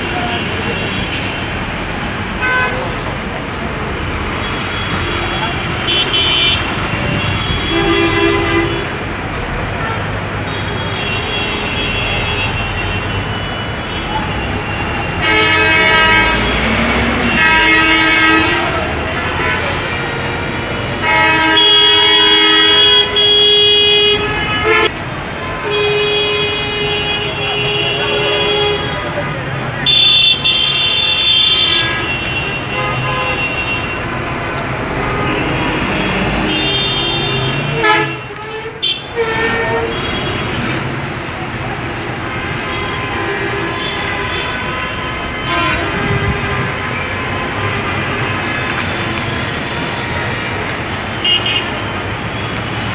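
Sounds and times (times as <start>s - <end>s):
road traffic: 0.0s - 52.9s
bus horns blasting: 2.4s - 3.0s, 4.4s - 9.1s, 9.7s - 29.2s, 29.8s - 40.8s, 42.2s - 52.4s
voices: 24.9s - 31.1s.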